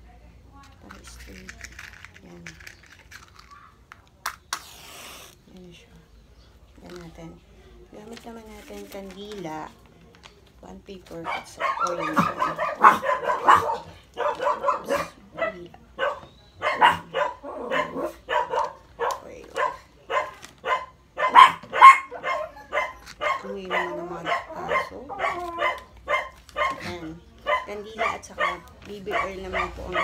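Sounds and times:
dog barking: 11.2 - 30.0.

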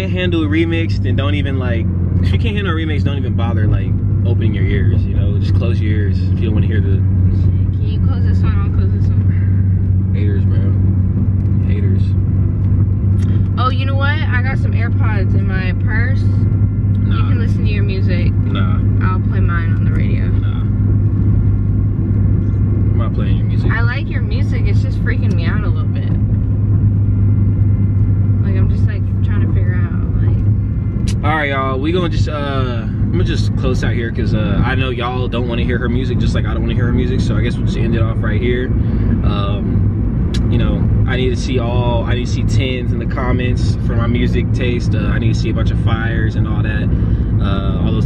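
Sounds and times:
car engine and road noise: 0.0 - 48.0.

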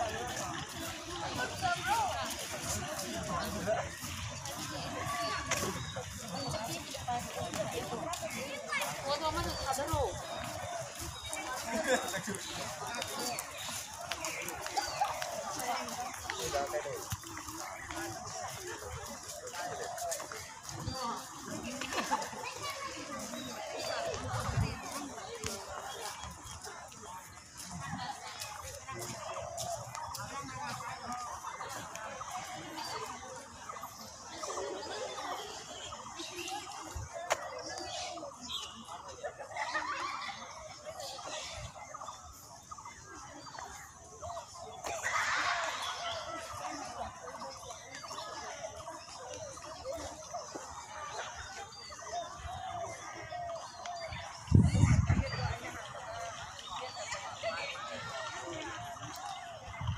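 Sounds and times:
birds chattering: 0.0 - 59.9
indistinct voices talking: 0.0 - 59.9.

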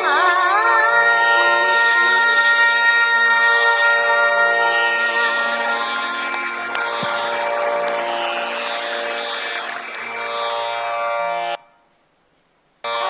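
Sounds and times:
tanpura drone: 0.0 - 11.8
instruments holding sustained notes: 0.0 - 11.9.

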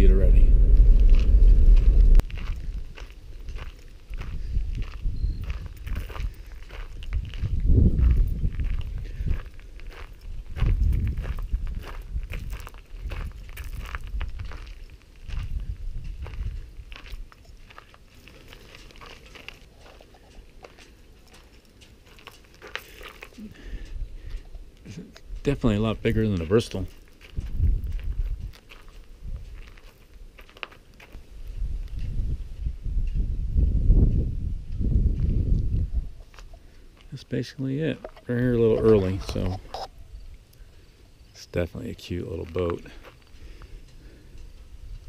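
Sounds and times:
car engine rumble: 0.0 - 2.7
low rumbles: 0.0 - 17.3
footsteps crunching on gravel: 0.1 - 23.5, 25.3 - 31.3, 42.0 - 43.7.

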